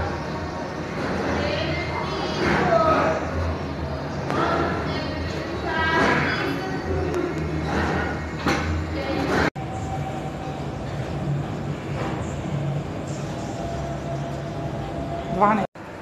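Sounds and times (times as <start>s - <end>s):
low rumble of gym room: 0.0s - 16.0s.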